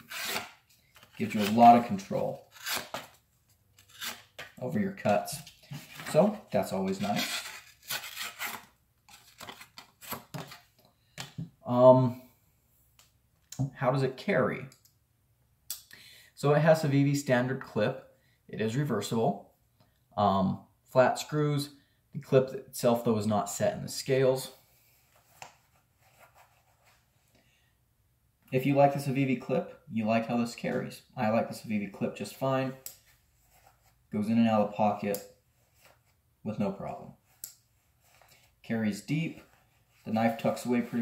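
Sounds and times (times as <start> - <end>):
knife cutting cardboard: 0.0 - 1.8.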